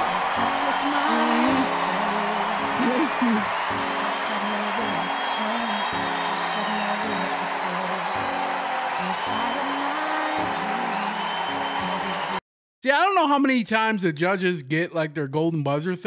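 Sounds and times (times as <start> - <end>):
audience applause and cheering: 0.0 - 12.4
music with sustained notes: 0.0 - 12.4.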